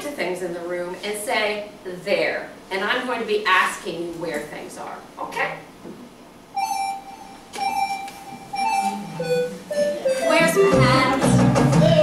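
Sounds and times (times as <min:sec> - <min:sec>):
children's song: 0:07.8 - 0:12.0.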